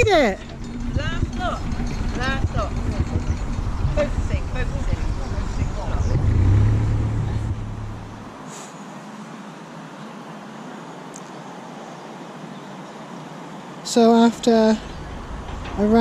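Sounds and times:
diesel engine droning: 0.0s - 8.4s
faint outdoor hiss: 0.0s - 16.0s.

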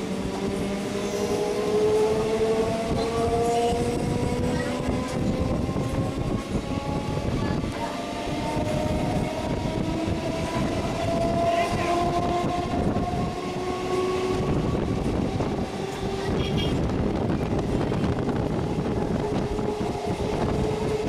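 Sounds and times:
train wheels rumbling on rail: 0.0s - 21.0s.

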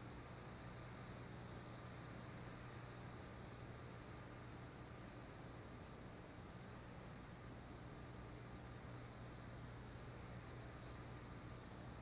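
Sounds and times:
low even hum: 0.0s - 12.0s
videotape hiss: 0.0s - 12.0s.

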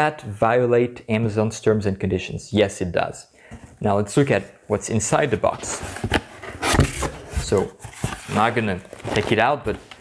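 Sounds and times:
cardboard rubbing and scraping: 5.4s - 9.8s.

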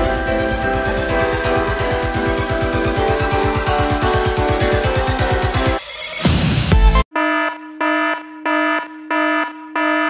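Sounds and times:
electronic alarm beeping: 7.1s - 10.0s.

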